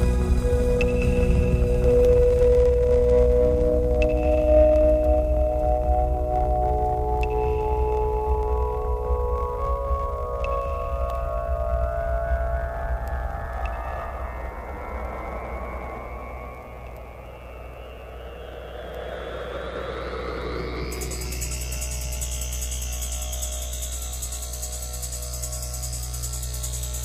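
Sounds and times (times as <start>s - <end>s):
steady low bass: 0.0s - 27.0s
sweeping synth: 0.0s - 27.0s.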